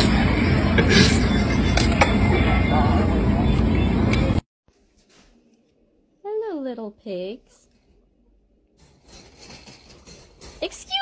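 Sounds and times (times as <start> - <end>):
rustling against wire cage: 8.8 - 11.0.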